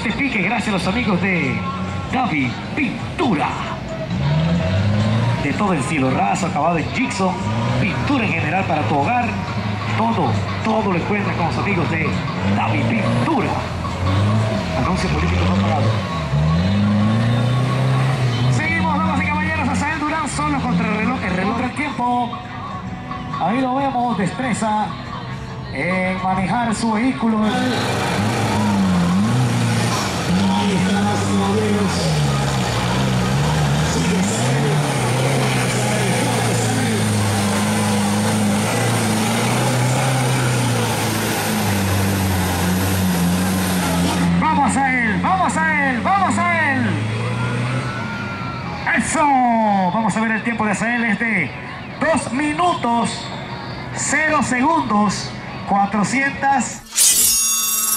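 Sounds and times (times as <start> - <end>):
off-road vehicle engine revving: 0.0 - 22.8, 26.5 - 48.6.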